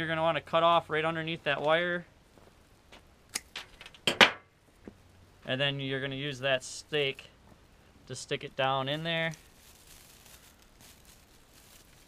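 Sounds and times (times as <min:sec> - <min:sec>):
rustling of pine boughs and weeds: 0:04.7 - 0:12.0.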